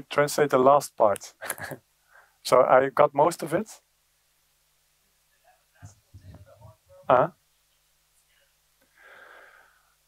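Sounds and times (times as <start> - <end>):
faint breathy exhale: 8.9 - 10.0.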